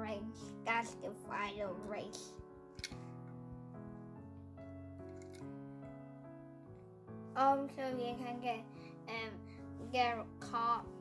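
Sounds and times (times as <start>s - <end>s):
soft keyboard music: 0.0s - 11.0s.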